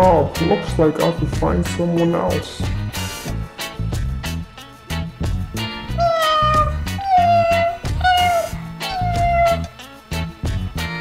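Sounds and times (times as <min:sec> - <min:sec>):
background music with steady beat: 0:00.0 - 0:11.0
cat meowing: 0:06.0 - 0:09.7.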